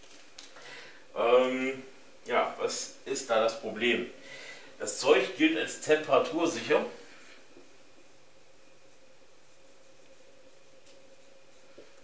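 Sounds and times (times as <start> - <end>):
faint hum: 0.0 - 12.0
marker on whiteboard: 8.8 - 12.0.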